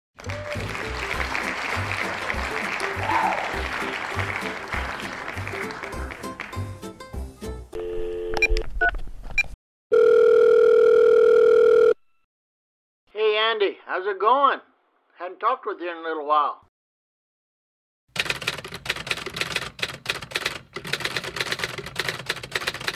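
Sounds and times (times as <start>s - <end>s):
upbeat intro music: 0.2s - 7.8s
telephone tone: 7.8s - 8.6s, 9.9s - 12.2s.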